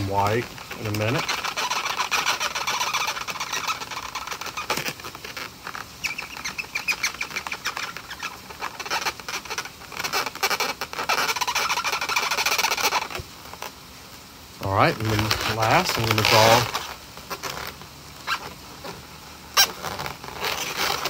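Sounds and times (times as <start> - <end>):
marker squeaking on a balloon: 0.0 - 13.8, 14.6 - 21.0.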